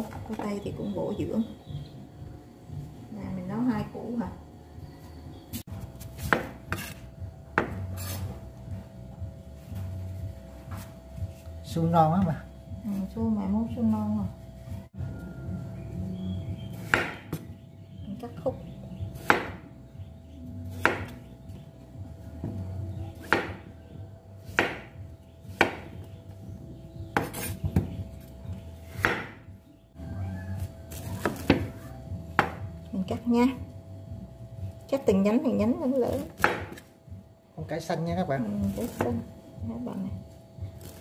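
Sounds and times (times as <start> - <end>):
low steady hum: 0.0 - 41.0.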